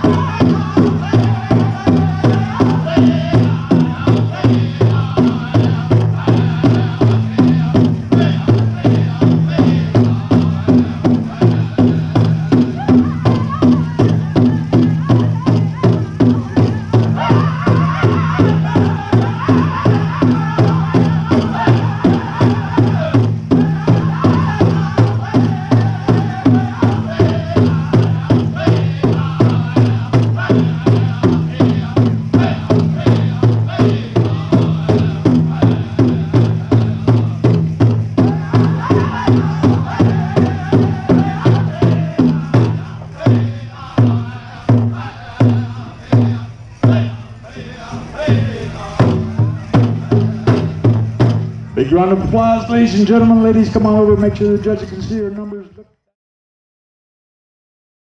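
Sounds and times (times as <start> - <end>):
big drum fast even beat: 0.0 - 55.5
chorus of high-pitched singing: 0.0 - 55.6.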